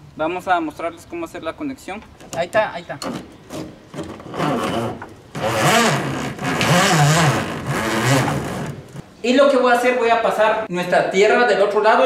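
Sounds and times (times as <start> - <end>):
scraping and rubbing: 3.4 - 9.0
power tool motor running: 4.3 - 9.0.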